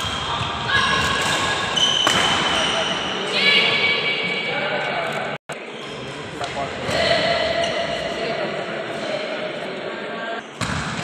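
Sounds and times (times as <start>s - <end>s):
players' voices: 0.0s - 10.7s
court noise: 0.0s - 11.0s.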